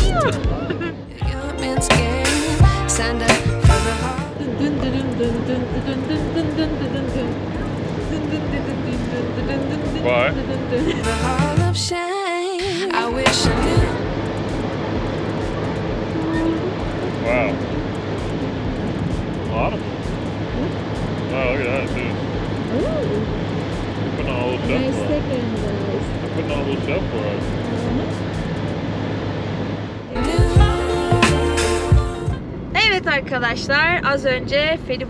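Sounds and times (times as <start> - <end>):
ferry engine drone: 0.0 - 12.0, 12.6 - 35.0.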